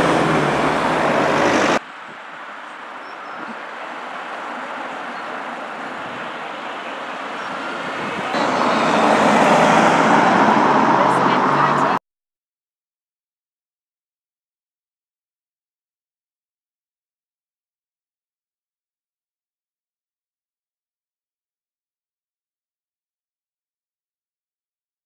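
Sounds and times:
road traffic rushing hum: 0:00.0 - 0:12.0
vehicle engine low drone: 0:00.0 - 0:12.0.

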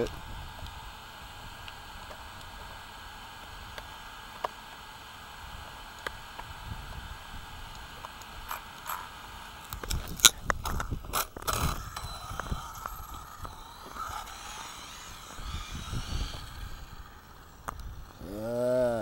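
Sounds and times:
rc car motor whining: 0:00.0 - 0:19.0
tyre and road rumble: 0:06.5 - 0:19.0.

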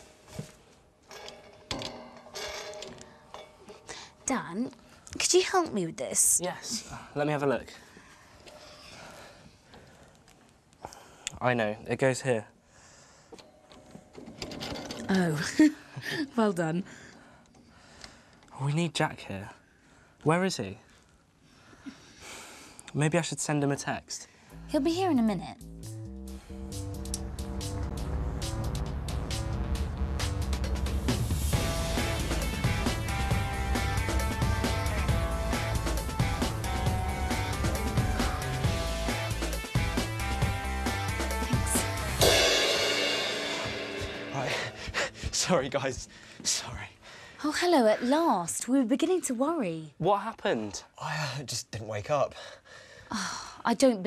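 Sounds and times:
background music with bass line: 0:24.6 - 0:45.4
loud cymbal crash: 0:41.3 - 0:45.4.

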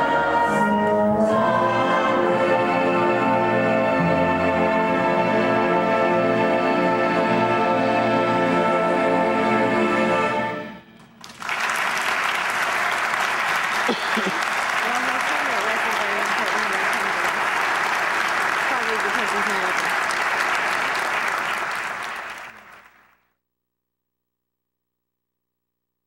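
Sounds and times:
audience applause: 0:11.2 - 0:23.2.

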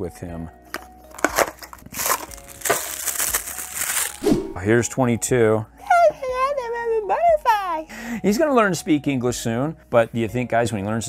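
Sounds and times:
paper wrapping crinkling: 0:00.7 - 0:04.2.

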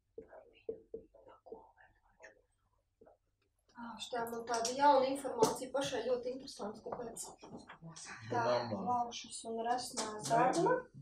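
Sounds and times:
woman whispering: 0:00.2 - 0:02.4.

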